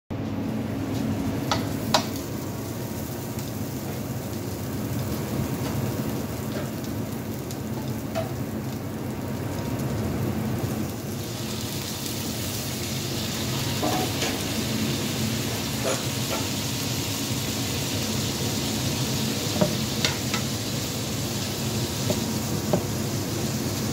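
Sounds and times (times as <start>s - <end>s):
meat sizzling in a frying pan: 0.7s - 23.9s.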